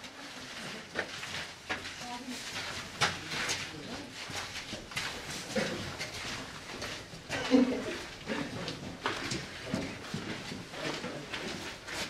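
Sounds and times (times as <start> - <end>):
footsteps in a tunnel: 0.0 - 12.0.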